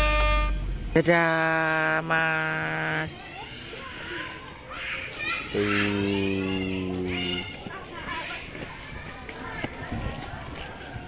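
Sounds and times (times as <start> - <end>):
children talking: 1.9 - 11.0.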